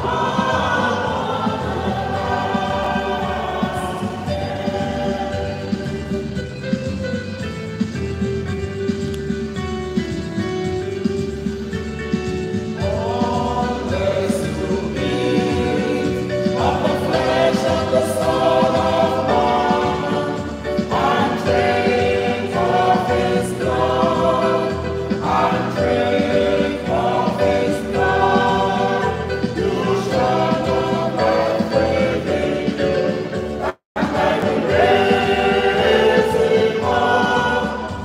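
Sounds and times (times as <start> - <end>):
choir singing a hymn: 0.0 - 7.2, 12.6 - 38.0
instrumental accompaniment: 0.0 - 38.0.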